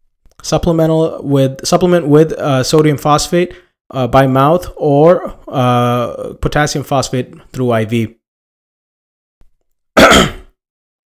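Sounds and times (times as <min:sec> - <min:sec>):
man clearing his throat: 0:10.0 - 0:10.6.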